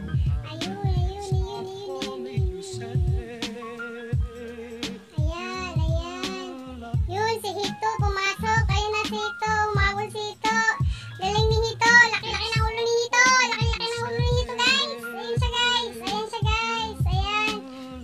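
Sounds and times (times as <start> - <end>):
pop song with high singing voice: 0.0 - 18.0.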